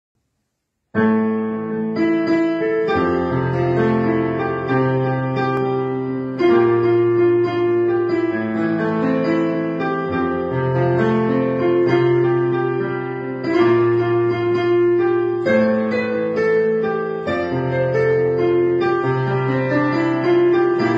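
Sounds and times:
digital piano playing chords: 0:00.9 - 0:20.9.

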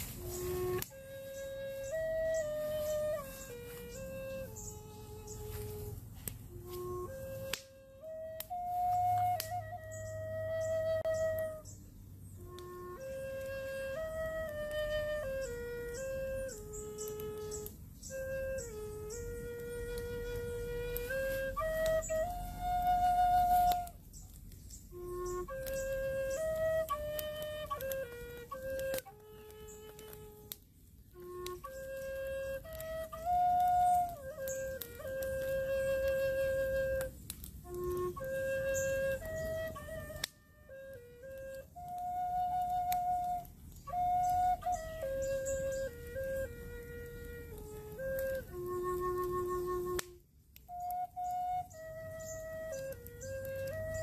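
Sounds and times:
wooden flute melody: 0:00.0 - 0:54.0.

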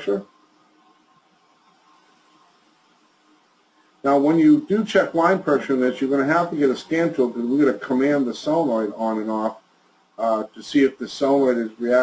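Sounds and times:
faint room tone hiss: 0:00.0 - 0:12.0
person speaking: 0:04.0 - 0:09.6, 0:10.2 - 0:12.0.

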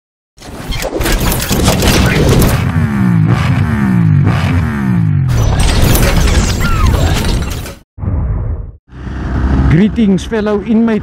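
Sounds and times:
motorcycle engine revving: 0:02.4 - 0:05.4, 0:08.9 - 0:10.1.

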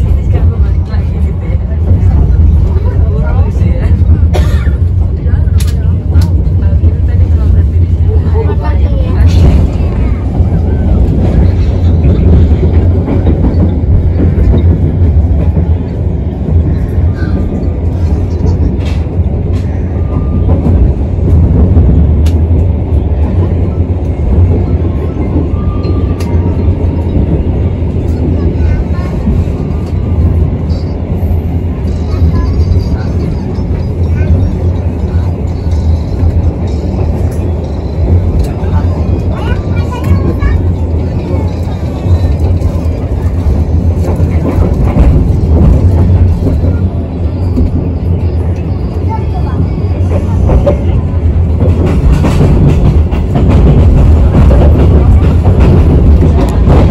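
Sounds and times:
train rumbling from inside carriage: 0:00.0 - 0:56.9.

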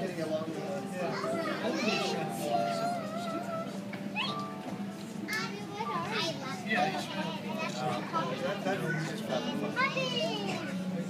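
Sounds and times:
crowd chattering: 0:00.0 - 0:11.0
children squealing: 0:04.1 - 0:04.4.

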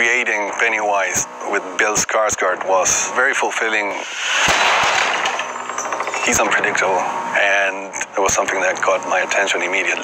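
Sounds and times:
loud hissing burst: 0:04.0 - 0:04.9.

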